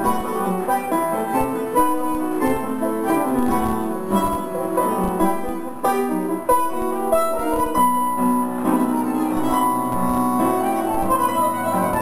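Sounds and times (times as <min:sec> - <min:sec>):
bandoneon playing tango: 0:00.0 - 0:12.0
piano playing: 0:00.0 - 0:12.0.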